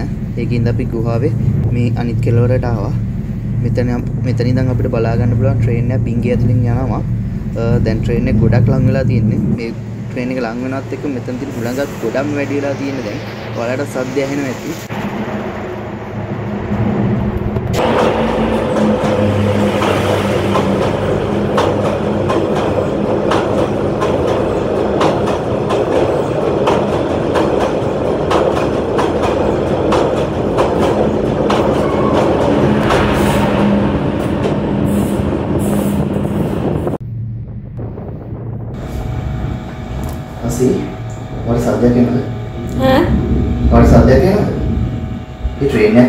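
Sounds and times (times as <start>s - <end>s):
train rumbling in tunnel: 0.0s - 46.0s
wheels clattering over rails: 16.4s - 37.0s.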